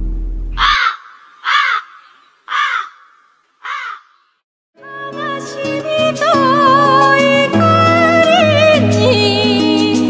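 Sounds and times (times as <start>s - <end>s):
crow cawing: 0.6s - 4.4s.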